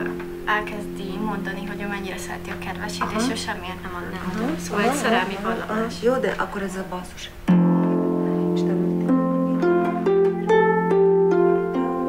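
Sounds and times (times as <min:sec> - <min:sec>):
harp plucked notes: 0:00.0 - 0:06.0, 0:07.4 - 0:12.0.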